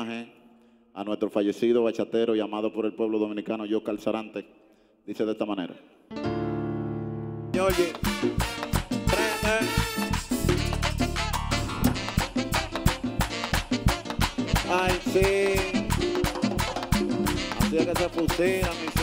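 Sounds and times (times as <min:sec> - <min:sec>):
live tropical band music: 0:06.1 - 0:19.0
guira and congas beat: 0:07.5 - 0:19.0.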